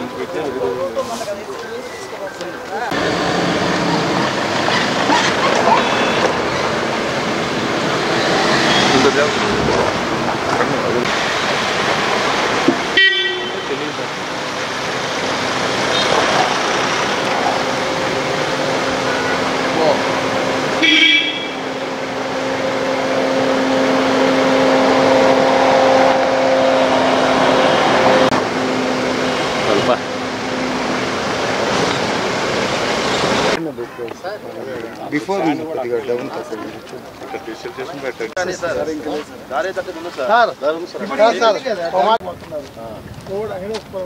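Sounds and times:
engine and tyre noise: 0.0 - 44.0
steady drone: 2.9 - 33.6
cars driving by on dirt track: 2.9 - 33.8
short car horn toots: 20.8 - 21.6.

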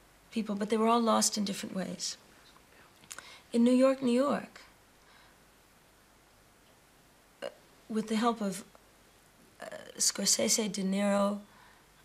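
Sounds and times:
woman speaking: 0.4 - 2.2, 3.5 - 4.7, 7.4 - 8.7, 9.6 - 11.5.

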